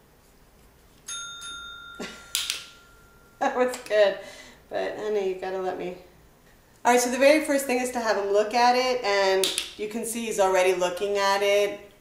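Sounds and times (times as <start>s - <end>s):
dinner bell ding: 1.1s - 3.8s.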